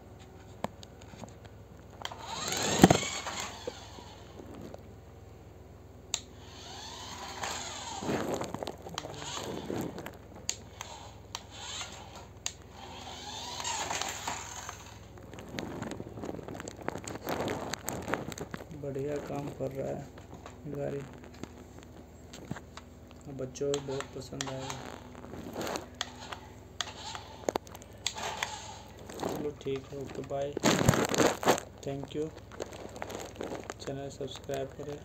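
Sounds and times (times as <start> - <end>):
toy car motor whining: 2.0 - 4.8, 6.1 - 20.0, 23.3 - 35.0
sharp clicks: 6.1 - 12.7.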